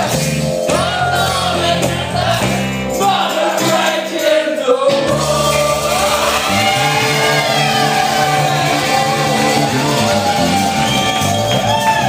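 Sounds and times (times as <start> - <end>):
man singing lead: 0.0 - 10.4
backing voices singing: 0.0 - 12.0
bass: 0.0 - 12.0
electric keyboard: 0.0 - 12.0.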